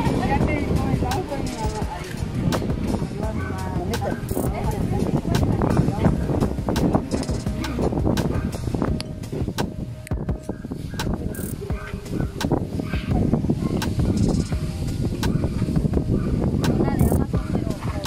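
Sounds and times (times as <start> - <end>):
indistinct voices: 0.0 - 9.2
low rumble: 0.0 - 11.3
microphone handling clicks and knocks: 1.1 - 17.6.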